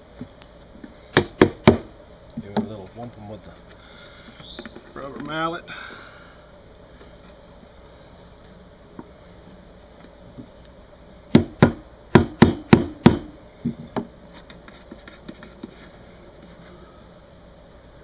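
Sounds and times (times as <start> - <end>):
rubber mallet knocking on wood: 11.3 - 14.1.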